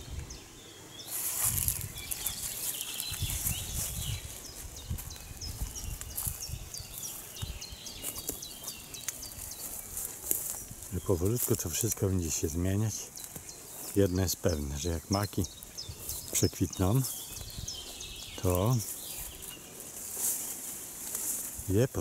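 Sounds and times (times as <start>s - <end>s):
rustle of leafy plants: 0.0s - 22.0s
footsteps: 1.1s - 21.7s.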